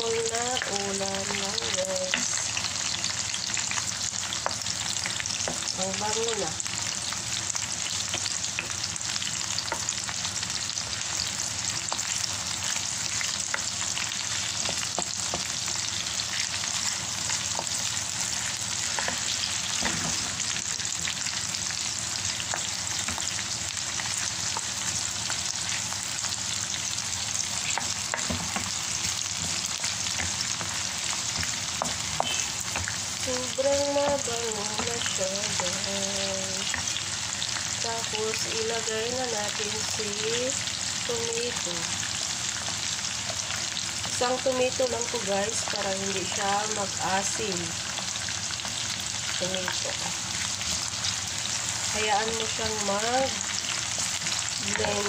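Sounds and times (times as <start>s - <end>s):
garlic and onion sizzling in oil: 0.0s - 55.0s
wooden spoon stirring: 27.4s - 35.9s.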